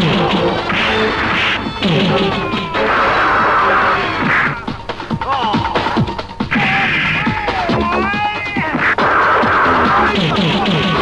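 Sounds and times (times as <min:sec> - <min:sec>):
background music: 0:00.0 - 0:11.0
high wailing cry: 0:02.2 - 0:04.2.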